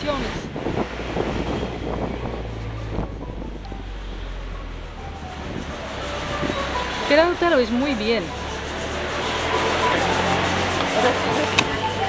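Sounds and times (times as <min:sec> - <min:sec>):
street traffic: 0:00.0 - 0:12.0
wind rumbling on microphone: 0:00.0 - 0:12.0.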